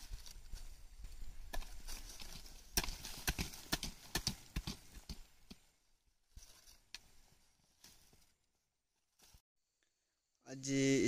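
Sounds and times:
hand hoe chopping dry soil: 0.0 - 5.7.

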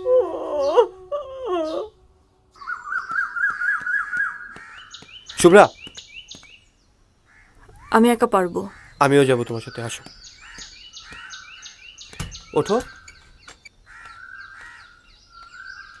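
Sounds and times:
wavering wailing voice: 0.0 - 2.8
loud bird caw: 2.6 - 5.6, 7.3 - 9.3, 10.2 - 16.0
bird warbling call: 2.6 - 6.6, 9.6 - 16.0.

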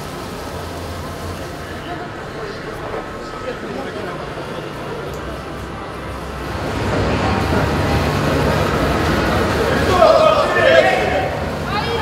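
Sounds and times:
indistinct crowd chatter: 0.0 - 12.0.

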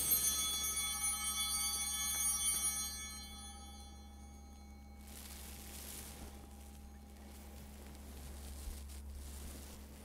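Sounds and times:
high altar bell tones: 0.0 - 7.9.

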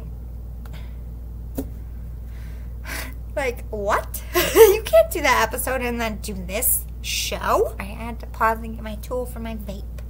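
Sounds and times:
low steady hum: 0.0 - 10.0
woman speaking: 3.4 - 10.0.

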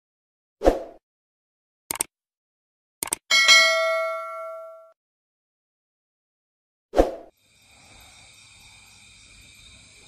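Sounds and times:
bell ding: 3.3 - 5.0.

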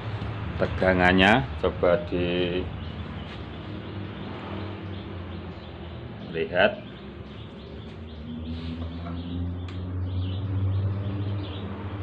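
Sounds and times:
birds chirping: 0.2 - 12.0.

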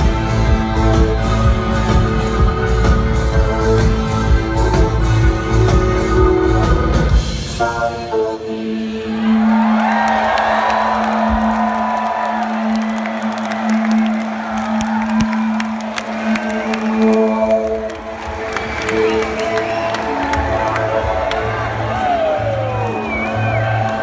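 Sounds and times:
band playing layered chords: 0.0 - 24.0
crowd cheering and whooping: 9.0 - 24.0.

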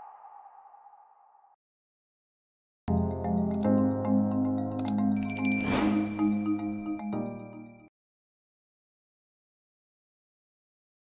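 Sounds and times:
electronic ping: 5.2 - 7.0.

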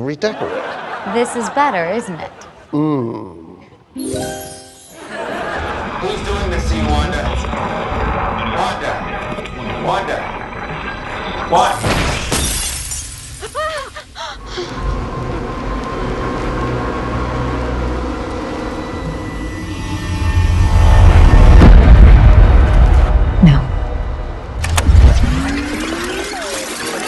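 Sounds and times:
glass shattering: 4.0 - 5.1, 10.7 - 13.8
deep rumble: 5.6 - 11.8, 14.4 - 25.7
rising whine: 14.6 - 25.7.

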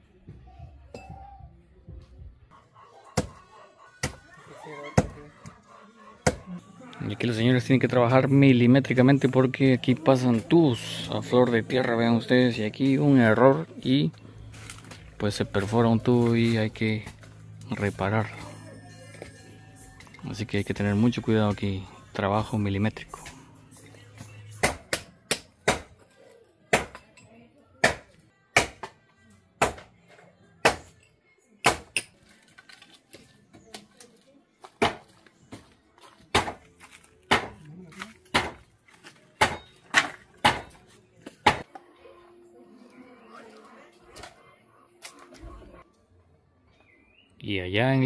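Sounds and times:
faint voices: 40.3 - 46.5.

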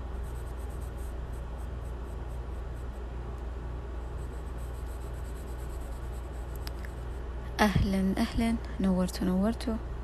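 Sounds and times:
pencil scratching on paper: 0.0 - 3.1, 4.0 - 7.2
steady low hum: 0.0 - 10.0.

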